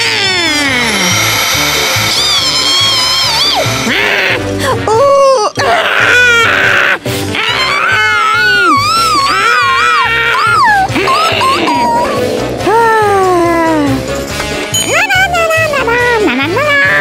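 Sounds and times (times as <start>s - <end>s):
cartoon background music: 0.0s - 17.0s
cartoon character whimpering: 10.4s - 13.9s.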